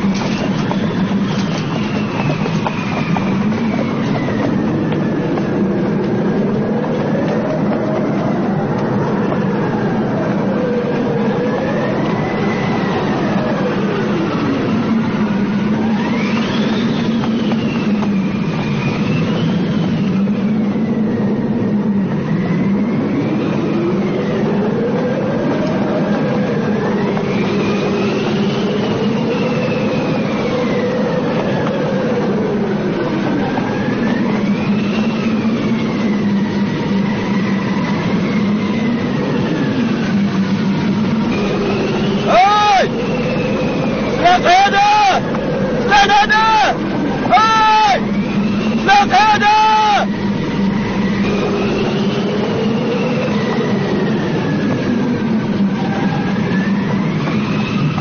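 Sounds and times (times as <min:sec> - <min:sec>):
low drone: 0:00.0 - 0:58.0
wavering whistling tones: 0:00.0 - 0:58.0.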